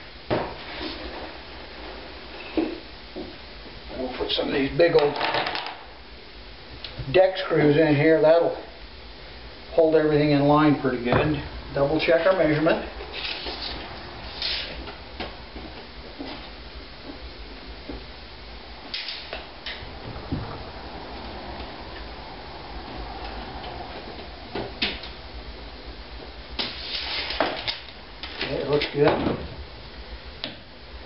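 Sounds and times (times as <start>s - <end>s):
low steady hum: 0.0s - 31.0s.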